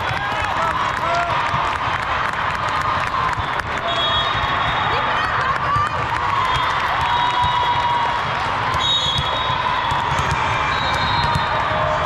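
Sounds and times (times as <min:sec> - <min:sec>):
overlapping voices and shouts: 0:00.0 - 0:12.0.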